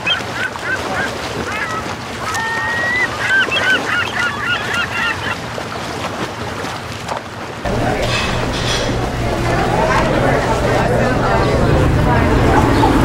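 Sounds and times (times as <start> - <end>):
low steady hum: 7.7 - 13.0
steady rush of noise: 7.7 - 13.0.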